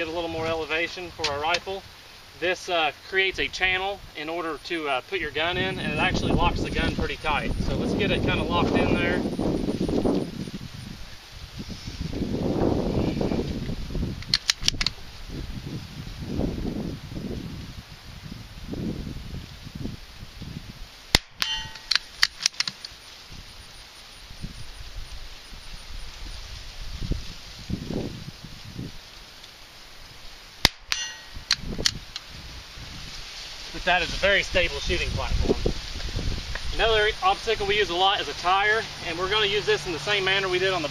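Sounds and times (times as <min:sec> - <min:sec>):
metallic clicks: 0:21.2 - 0:23.0.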